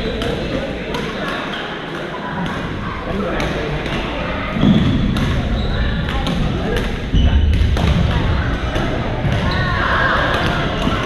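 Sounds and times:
background chatter: 0.0 - 11.0
racket hitting shuttlecock: 0.1 - 9.6, 10.2 - 11.0
sneakers squeaking on court: 3.4 - 7.8, 9.2 - 11.0.

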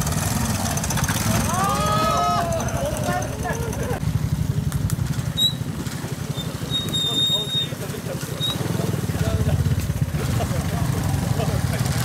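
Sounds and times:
motorcycle engine putter: 4.7 - 10.8.

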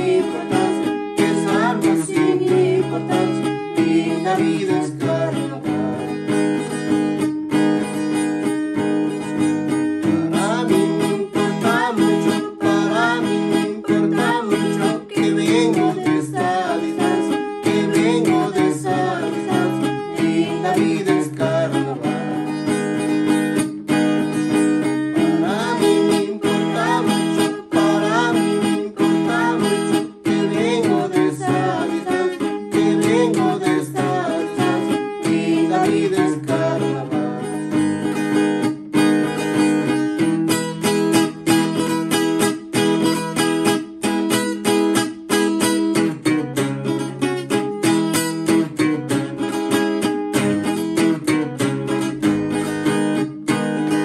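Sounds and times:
voices singing along: 0.0 - 6.0, 10.3 - 22.5, 25.1 - 37.6
acoustic guitar strummed: 0.0 - 54.0.

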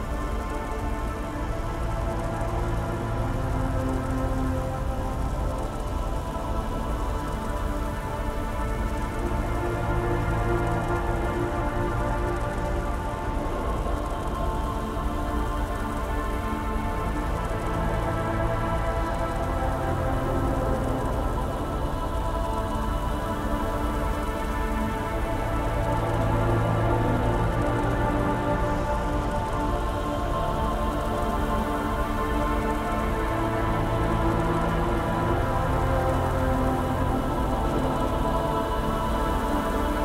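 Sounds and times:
ambient noise bed: 0.0 - 40.0
dark ambient synth drones: 0.0 - 40.0.

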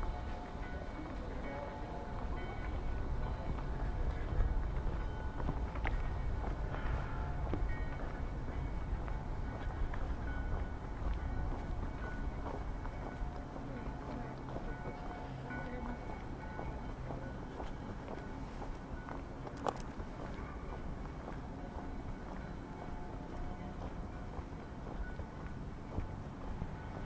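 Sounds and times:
faint voices of passers-by: 0.0 - 27.0.

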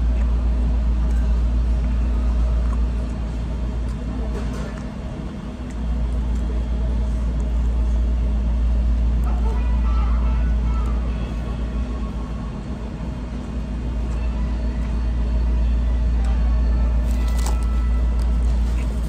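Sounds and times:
low rumble with hum: 0.0 - 19.0
faint voices: 9.0 - 13.1.

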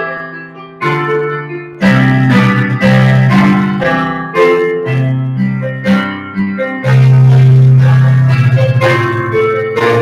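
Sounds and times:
deep bass piano chord: 0.0 - 10.0
piano playing a slow hymn: 0.0 - 10.0.

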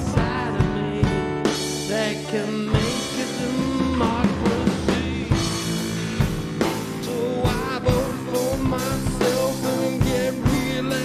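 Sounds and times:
drum kit beat: 0.0 - 11.0
guitar accompaniment: 0.0 - 11.0
rock song: 0.0 - 11.0.

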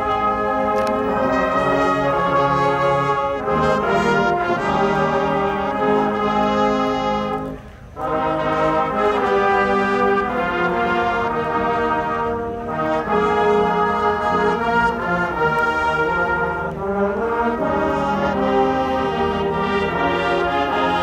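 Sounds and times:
marching band playing held chords: 0.0 - 21.0.

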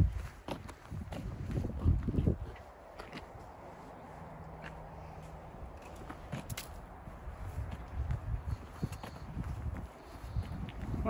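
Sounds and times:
footsteps on wet pavement: 0.0 - 11.0.

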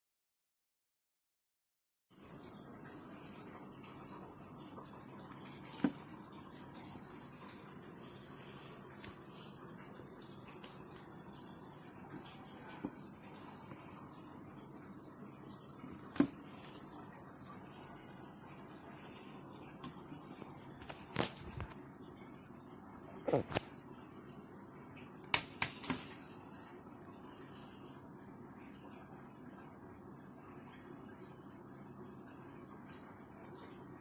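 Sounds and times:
room hiss: 2.1 - 34.0.

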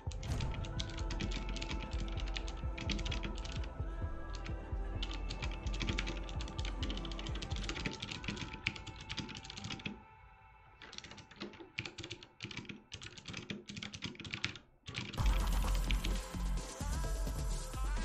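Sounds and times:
background music with heavy bass: 0.0 - 8.3, 15.2 - 18.0
rapid typing on keyboard: 0.0 - 10.0, 10.8 - 16.4.

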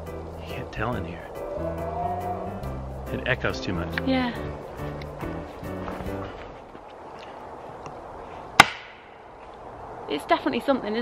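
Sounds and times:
sharp crack with echo: 8.6 - 9.2.

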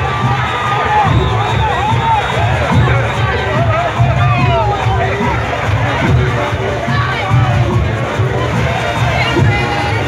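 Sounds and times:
band drums beating: 0.0 - 10.0
crowd cheering and shouting: 0.0 - 10.0.

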